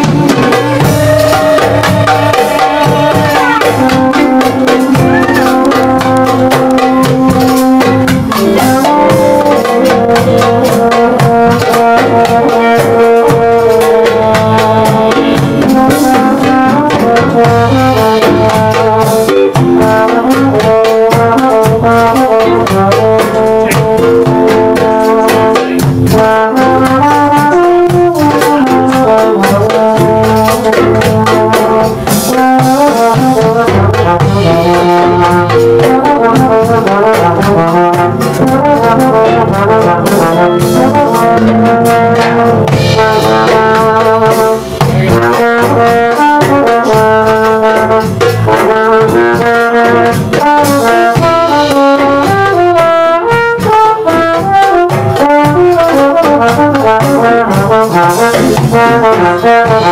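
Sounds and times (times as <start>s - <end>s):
live klezmer band playing: 0.0s - 59.9s.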